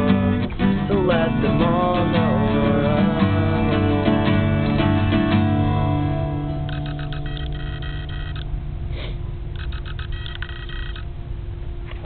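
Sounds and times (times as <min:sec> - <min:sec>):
acoustic guitar chord: 0:00.0 - 0:07.0
steady low rumble: 0:00.0 - 0:12.0
quick high chirps: 0:06.5 - 0:08.5, 0:09.5 - 0:11.1.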